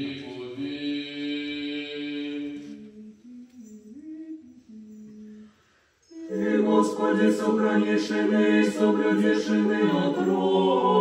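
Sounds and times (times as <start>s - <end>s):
choir singing a cappella: 0.0s - 5.2s, 6.1s - 11.0s.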